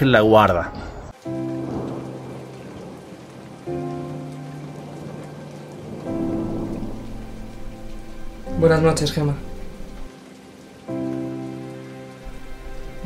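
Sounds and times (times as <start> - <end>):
soft musical score chords: 0.0 - 13.0
steady rain: 0.0 - 13.0.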